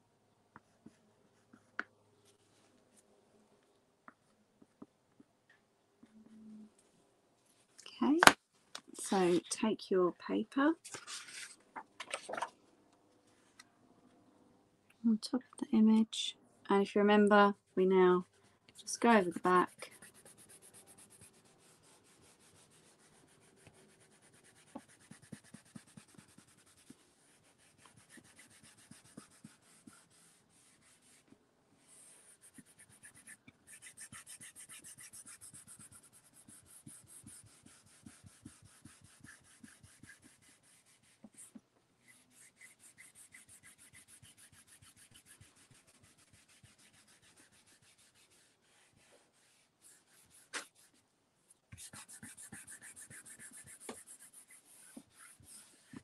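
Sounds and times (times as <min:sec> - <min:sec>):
pencil scratching on paper: 0:18.9 - 0:51.0, 0:51.7 - 0:56.0.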